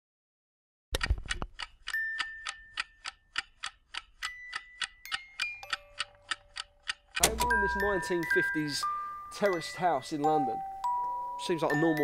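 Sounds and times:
fast clock-like ticking: 0:01.0 - 0:07.9
sustained high tones: 0:07.2 - 0:12.0.

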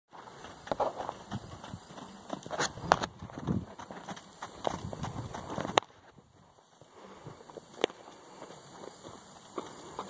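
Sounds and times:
hooves trotting on dirt: 0:00.1 - 0:10.0.

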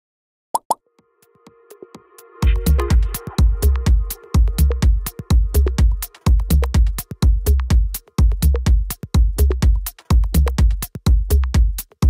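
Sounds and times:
electronic pops: 0:00.6 - 0:00.8
soft ticking beats: 0:02.4 - 0:12.0.

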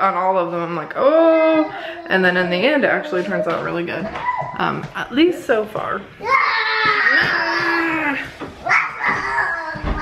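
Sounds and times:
baby crying: 0:06.2 - 0:10.0.

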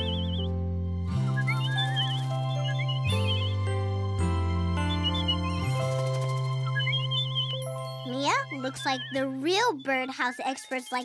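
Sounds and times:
gentle cartoon music with chimes: 0:00.0 - 0:11.0
child speaking: 0:08.1 - 0:11.0.

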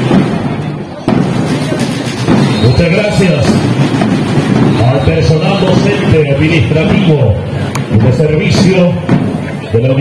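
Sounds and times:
crowd noise: 0:00.0 - 0:10.0
marching band drums: 0:00.0 - 0:10.0.

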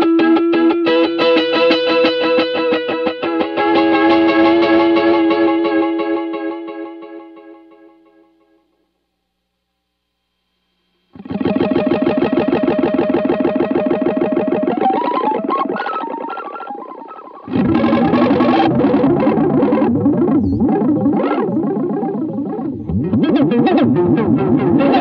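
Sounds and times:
electric guitar with stuttering delay: 0:00.0 - 0:08.2, 0:11.2 - 0:25.0.

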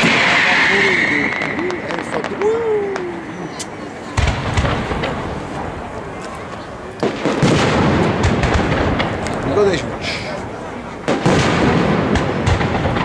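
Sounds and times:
firework shells bursting: 0:00.0 - 0:06.1
firework crackling: 0:00.0 - 0:13.0.

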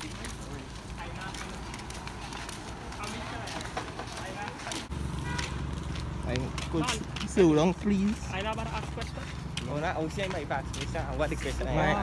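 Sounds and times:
footsteps on pavement: 0:00.0 - 0:12.0.

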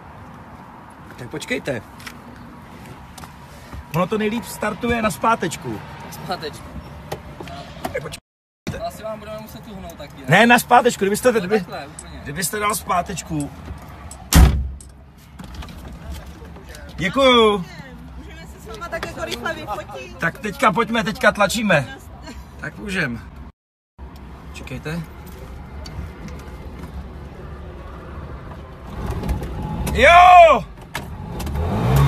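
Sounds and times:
loud thump: 0:14.3 - 0:14.8.

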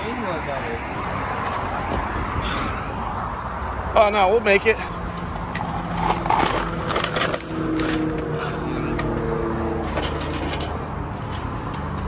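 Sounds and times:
fence wire clinking and scraping: 0:05.2 - 0:09.1, 0:09.8 - 0:12.0.

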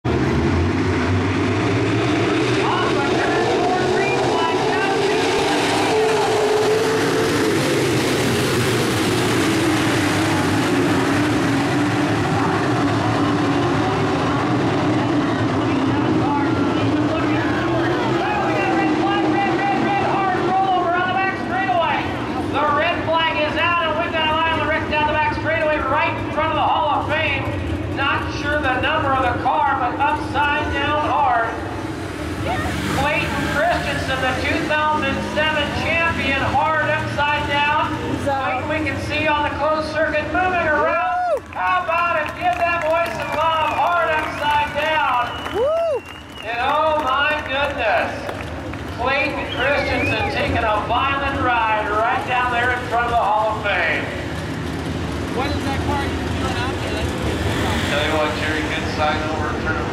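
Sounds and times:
race car engines roaring: 0:00.0 - 0:59.9.

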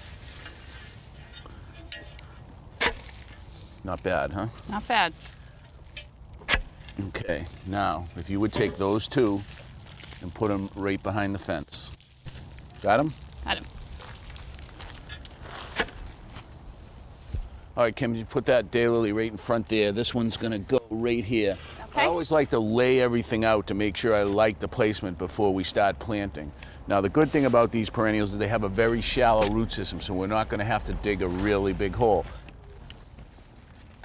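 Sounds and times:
spade crunching into roots: 0:00.0 - 0:03.5, 0:05.3 - 0:07.1, 0:13.9 - 0:16.5
spade chopping into roots: 0:06.4 - 0:07.0
faint rustles and clicks: 0:30.9 - 0:34.0.

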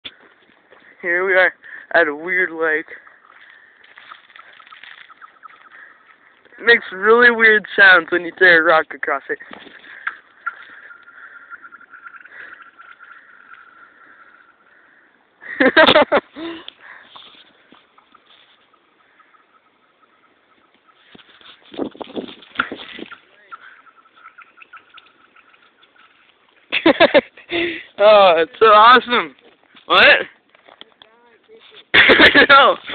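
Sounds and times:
faint outdoor background noise: 0:00.0 - 0:32.9
small high chirps: 0:03.0 - 0:06.6, 0:09.8 - 0:15.2, 0:16.4 - 0:26.7.

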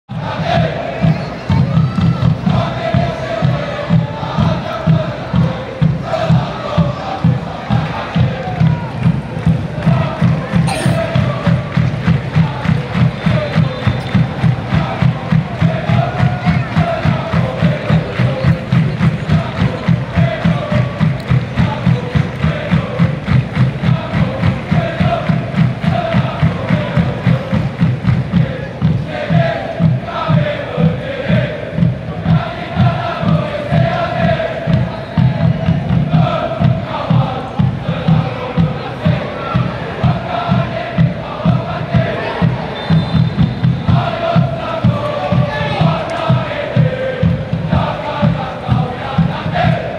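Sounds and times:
crowd singing a chant: 0:00.1 - 0:49.9
pounding drum beat: 0:00.1 - 0:49.9.

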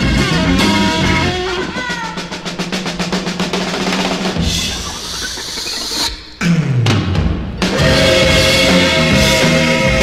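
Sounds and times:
rapid drum roll: 0:00.0 - 0:10.0.

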